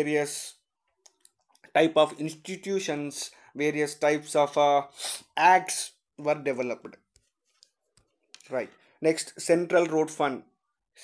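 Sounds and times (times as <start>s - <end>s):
man speaking: 0.0s - 0.7s, 1.6s - 7.1s, 8.4s - 10.6s.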